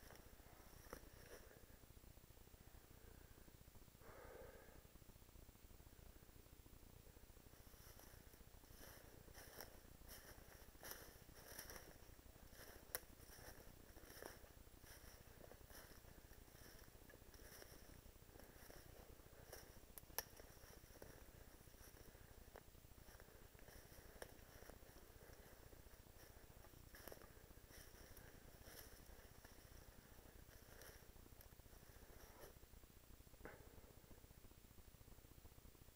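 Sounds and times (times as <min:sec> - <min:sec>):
rustling of brush and leaves: 0:00.0 - 0:01.6, 0:07.4 - 0:32.6.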